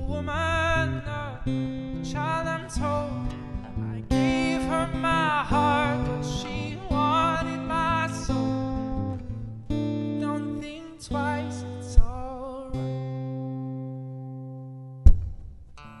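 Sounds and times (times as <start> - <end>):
man singing: 0.0 - 9.1, 10.0 - 13.0
acoustic guitar strumming: 0.0 - 16.0
sharp thump: 15.1 - 15.6.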